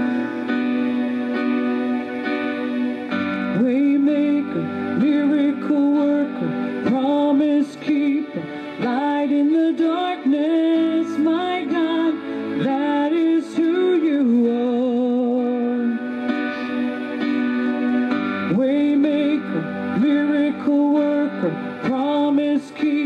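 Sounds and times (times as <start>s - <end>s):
sustained keyboard chords: 0.0s - 23.0s
woman singing: 3.5s - 16.2s, 18.4s - 23.0s.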